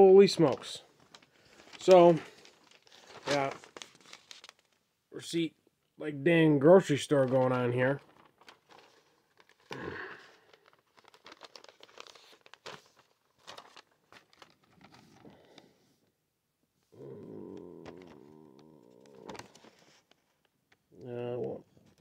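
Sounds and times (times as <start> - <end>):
paper receipt rustling and crinkling: 0.2 - 4.8, 6.8 - 15.8, 17.7 - 20.8.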